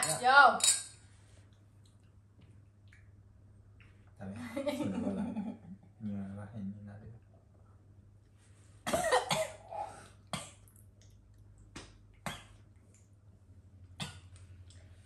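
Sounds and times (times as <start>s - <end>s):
faint low hum: 0.0s - 15.0s
person coughing: 8.9s - 10.6s.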